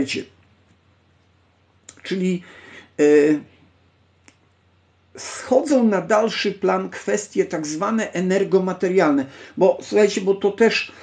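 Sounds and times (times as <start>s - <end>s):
man's voice holding syllable: 0.0s - 0.3s, 2.0s - 3.4s, 5.2s - 10.9s
faint click: 4.2s - 4.6s.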